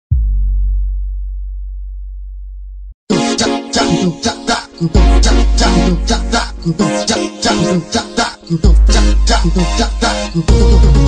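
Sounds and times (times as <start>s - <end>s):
deep electronic bass tone: 0.1s - 3.0s.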